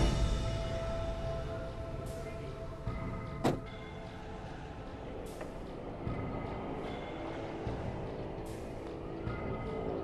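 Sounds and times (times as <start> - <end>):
soft background music: 0.0 - 10.0
car door thump: 3.4 - 3.7.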